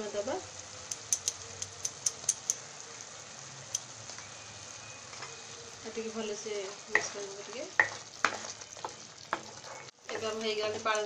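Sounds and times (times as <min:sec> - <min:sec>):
thick sauce bubbles popping: 0:06.8 - 0:10.4.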